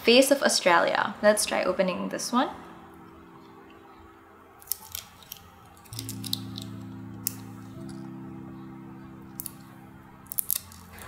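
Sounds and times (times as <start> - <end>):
soft background music chords: 1.4 - 11.0.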